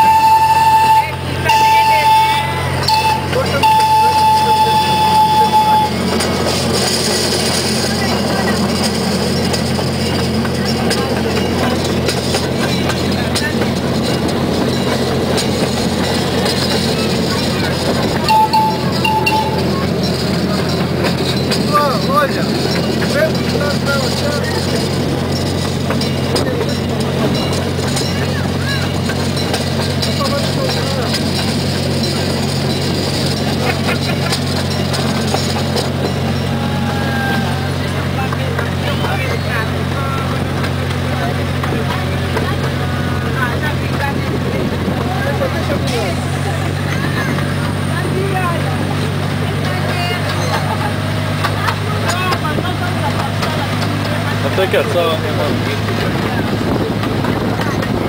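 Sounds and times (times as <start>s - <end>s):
miniature train engine hum: 0.0s - 58.0s
ride rumble: 0.0s - 58.0s
riders chattering: 0.0s - 58.0s.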